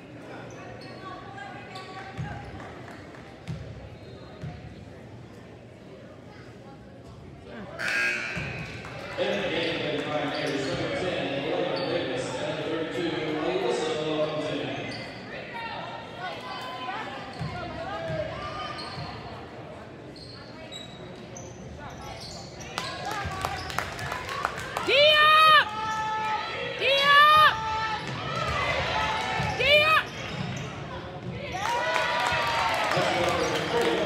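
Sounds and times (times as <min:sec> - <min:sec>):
sneakers squealing on floor: 0:07.8 - 0:11.0, 0:18.4 - 0:19.4, 0:20.1 - 0:23.8, 0:29.4 - 0:31.7
spectators talking: 0:24.5 - 0:34.0.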